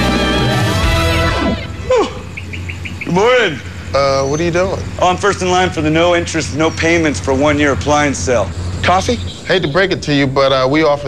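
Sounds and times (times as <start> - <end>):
music jingle: 0.0 - 1.9
birds chirping high notes: 0.0 - 10.6
morning street ambience: 0.0 - 11.0
falling voice-like sound: 1.2 - 2.3.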